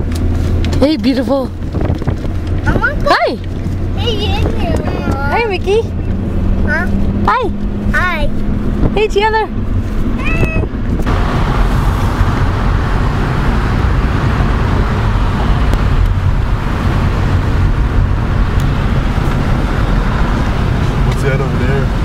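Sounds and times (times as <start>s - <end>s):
car road noise rumble: 0.0s - 22.0s.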